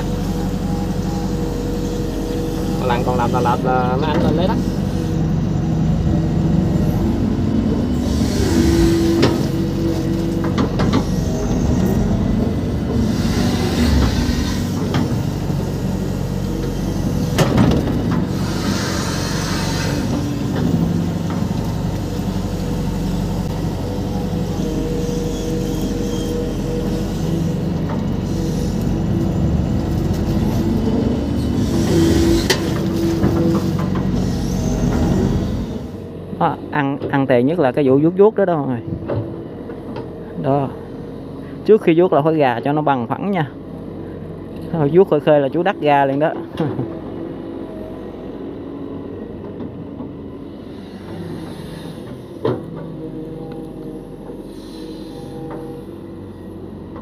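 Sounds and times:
excavator diesel engine under load: 0:00.0 - 0:57.0
hydraulic hissing surges: 0:00.5 - 0:05.8, 0:07.8 - 0:12.2, 0:12.9 - 0:17.4, 0:18.2 - 0:20.8, 0:24.3 - 0:36.0, 0:50.5 - 0:52.4, 0:54.4 - 0:56.1.

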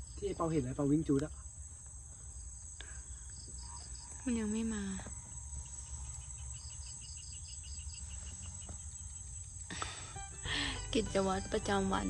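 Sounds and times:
insects trilling: 0:00.0 - 0:12.0.

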